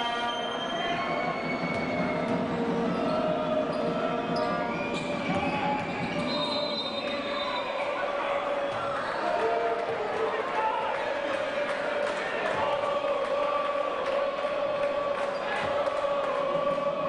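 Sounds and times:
crowd voices: 0.0 - 17.0.

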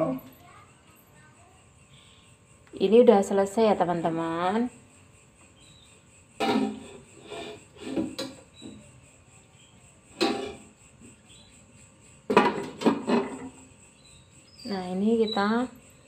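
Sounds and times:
quick knocks on pots: 6.4 - 6.8, 12.3 - 13.5
metal cookware clanking: 6.4 - 8.4, 10.2 - 10.7, 12.3 - 13.6.

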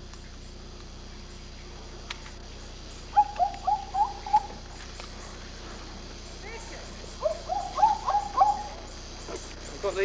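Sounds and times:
quick hooting calls: 3.1 - 4.6, 7.2 - 8.9.

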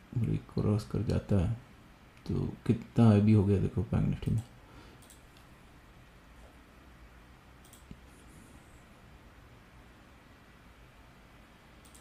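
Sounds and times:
low steady room hum: 0.0 - 12.0
faint mouse clicks: 4.2 - 5.5, 7.6 - 8.1, 11.8 - 12.0.

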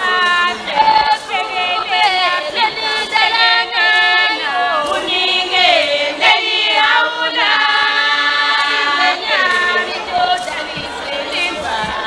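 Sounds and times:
women singing unaccompanied: 0.0 - 12.0.

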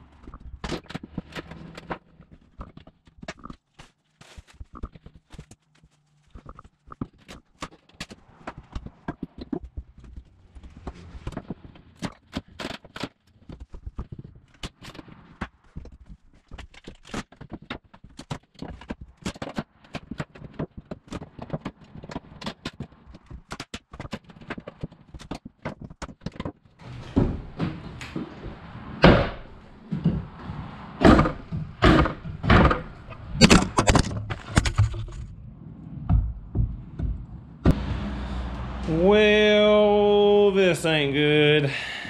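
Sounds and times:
wooden planks cracking: 0.0 - 37.8.

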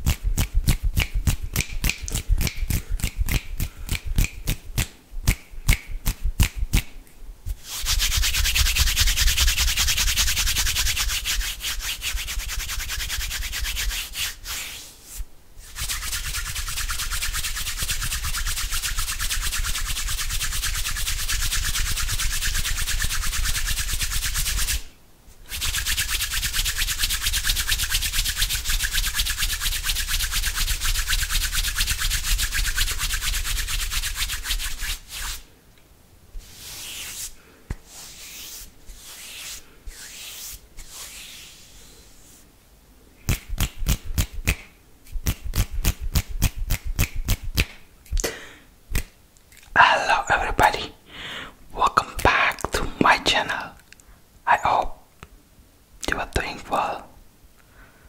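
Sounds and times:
palms rubbing together: 7.5 - 24.9, 25.5 - 35.5, 36.4 - 42.5.

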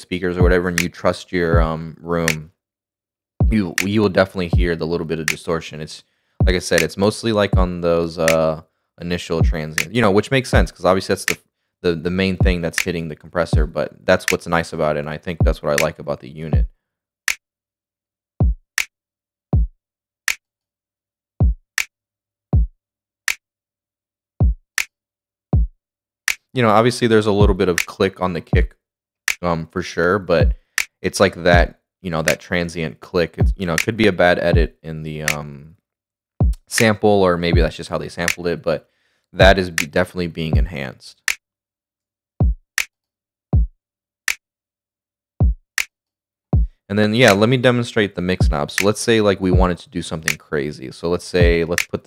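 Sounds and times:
electronic kick drum thumps: 0.4 - 0.6, 1.6 - 1.8, 3.4 - 3.6, 18.4 - 18.6, 27.4 - 27.6, 30.4 - 30.6, 33.4 - 33.6, 36.4 - 36.7, 39.4 - 39.6, 42.4 - 42.6, 45.4 - 45.6
kick drum: 18.4 - 18.6, 19.6 - 19.8, 21.4 - 21.6, 22.6 - 22.8, 24.4 - 24.6, 25.6 - 25.8, 30.4 - 30.6, 36.4 - 36.7, 39.4 - 39.6, 42.4 - 42.7, 43.6 - 43.8, 45.4 - 45.7, 46.6 - 46.8.

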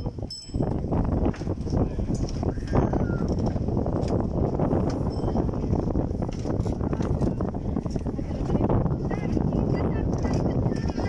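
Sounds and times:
crowd murmur: 6.4 - 11.0.

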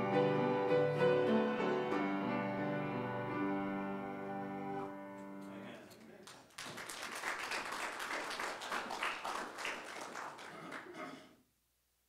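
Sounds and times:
congregation applauding: 5.8 - 11.2.

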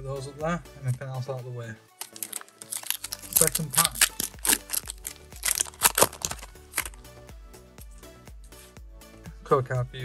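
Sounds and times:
background music: 0.0 - 10.0
foil wrapper crinkling: 2.0 - 7.0.

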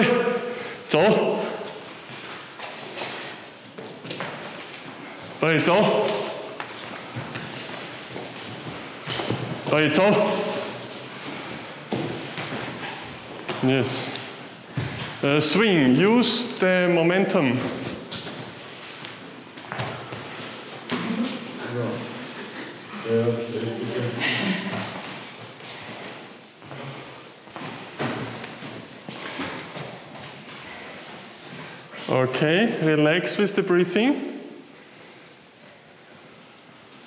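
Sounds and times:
footsteps on wooden floor: 6.0 - 13.6, 14.2 - 15.2, 17.6 - 21.6.

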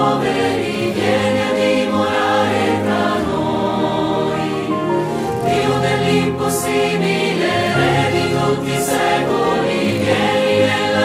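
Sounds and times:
choir singing worship song: 0.0 - 11.0
instrumental backing: 0.2 - 11.0.

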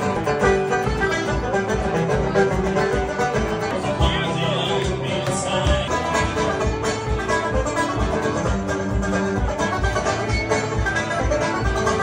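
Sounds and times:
folk music on plucked strings: 0.0 - 12.0.

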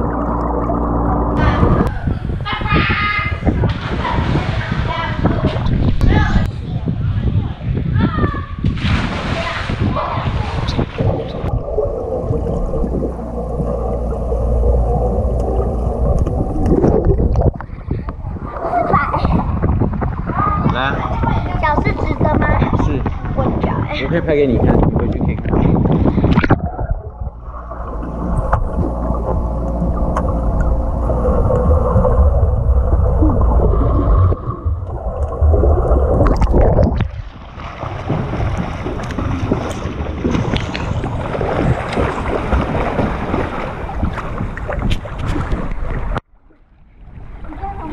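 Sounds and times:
pool water splashing: 0.0 - 6.5, 8.7 - 22.1, 25.9 - 47.9
underwater churning rumble: 0.0 - 47.9
swimmers splashing: 8.8 - 19.1, 37.1 - 45.7.

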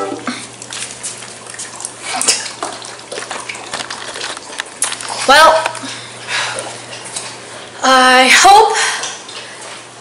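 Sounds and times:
dog lapping water: 0.3 - 5.8.

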